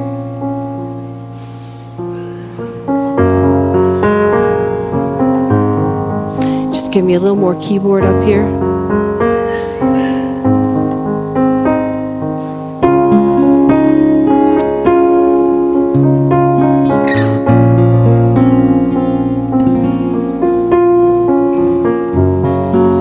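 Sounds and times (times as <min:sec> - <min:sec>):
electric keyboard chords: 0:00.0 - 0:23.0.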